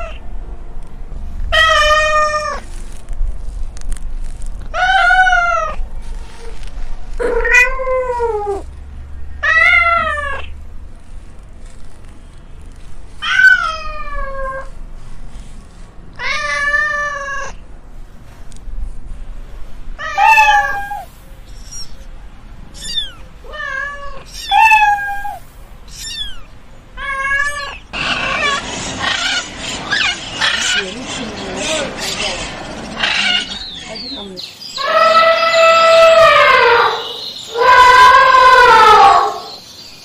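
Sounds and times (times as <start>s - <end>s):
cats meowing: 0.0s - 0.2s, 1.5s - 2.7s, 4.7s - 5.8s, 7.2s - 8.7s, 9.4s - 10.6s, 13.2s - 14.7s, 16.2s - 17.6s, 20.0s - 22.0s, 22.7s - 30.9s, 33.0s - 33.6s, 34.8s - 39.6s
dense noisy jumble: 17.6s - 38.4s.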